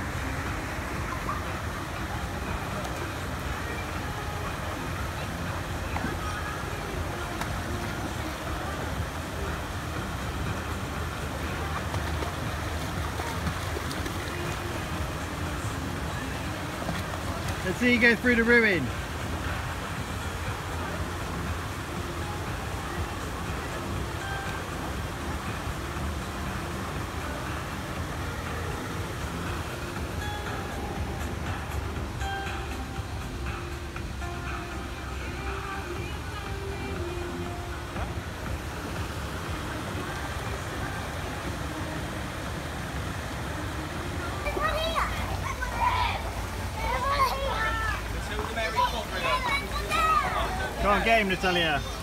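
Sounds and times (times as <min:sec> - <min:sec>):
faint music: 0:00.0 - 0:52.0.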